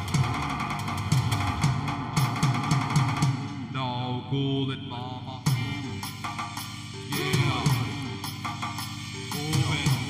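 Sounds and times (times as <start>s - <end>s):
drum kit with cymbals: 0.0s - 3.7s, 5.5s - 10.0s.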